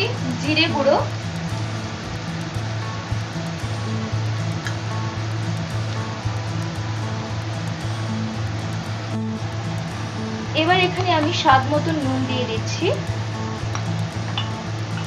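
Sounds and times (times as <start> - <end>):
music with repeating bass line: 0.0 - 15.0
spices frying in oil: 0.0 - 15.0.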